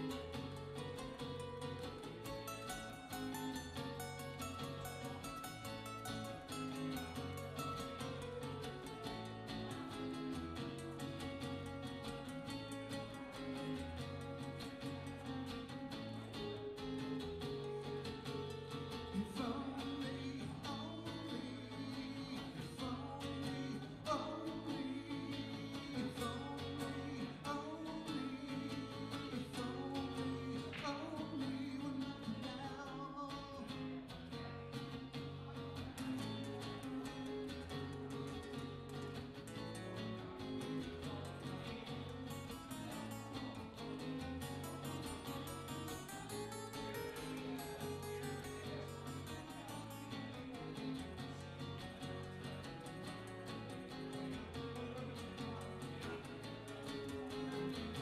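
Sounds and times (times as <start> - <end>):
acoustic guitars playing: 0.0 - 58.0.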